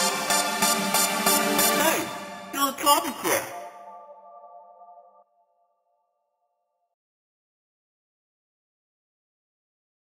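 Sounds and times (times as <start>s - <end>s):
held synth chord: 0.0s - 6.3s.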